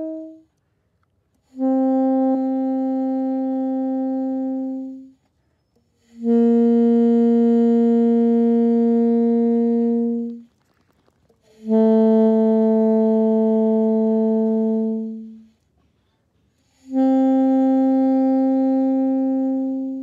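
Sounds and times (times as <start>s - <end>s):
saxophone long held notes: 0.0s - 0.6s, 1.4s - 10.5s, 11.4s - 15.6s, 16.5s - 20.0s.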